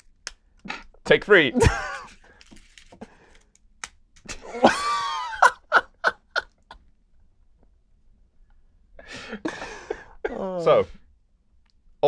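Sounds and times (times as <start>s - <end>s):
men laughing: 1.5s - 2.2s, 4.3s - 6.8s, 9.2s - 10.2s.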